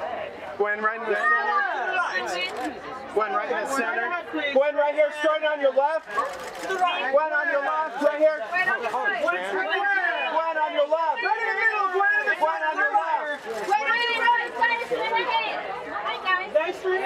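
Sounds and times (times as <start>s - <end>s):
people calling out and chattering: 0.0s - 17.0s.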